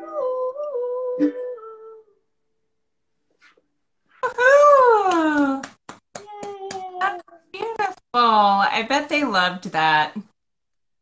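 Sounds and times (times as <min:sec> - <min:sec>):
quick hand claps: 0:05.0 - 0:07.8.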